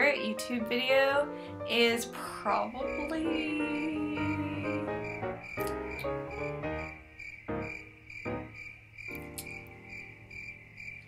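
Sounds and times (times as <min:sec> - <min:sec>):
crickets chirping: 0:02.6 - 0:11.0.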